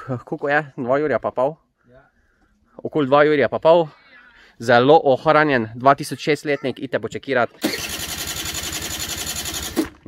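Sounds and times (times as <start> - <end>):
scooter starter motor cranking: 7.6 - 10.0.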